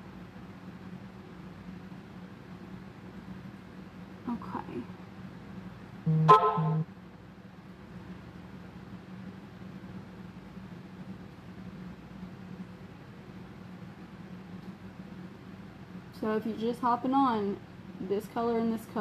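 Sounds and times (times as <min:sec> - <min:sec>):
steady low hum: 0:00.0 - 0:19.0
short double beep: 0:06.1 - 0:06.8.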